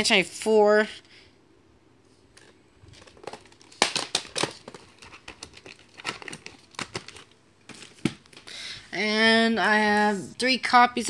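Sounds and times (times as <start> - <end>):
plastic crinkling: 2.3 - 8.5.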